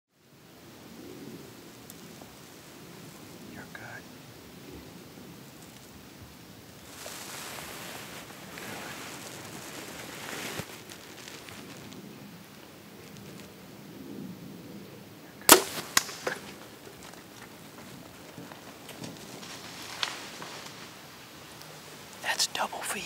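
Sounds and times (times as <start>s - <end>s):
steady outdoor hiss: 0.1s - 23.0s
hushed whispering: 3.5s - 4.1s, 22.2s - 23.0s.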